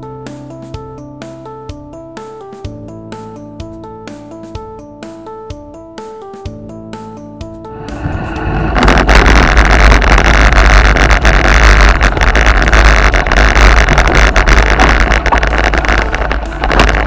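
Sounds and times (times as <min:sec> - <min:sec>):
wind rumble on microphone: 0:07.7 - 0:17.0
bike tyres rolling on gravel: 0:07.9 - 0:17.0.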